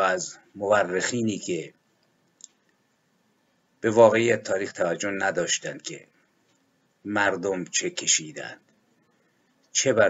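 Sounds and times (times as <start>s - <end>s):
man speaking: 0.0s - 1.9s, 3.8s - 6.4s, 7.0s - 8.7s, 9.7s - 10.0s.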